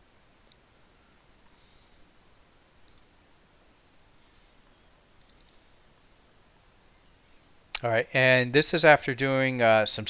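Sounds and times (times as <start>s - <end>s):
computer mouse clicks: 2.8s - 3.1s, 5.2s - 5.8s.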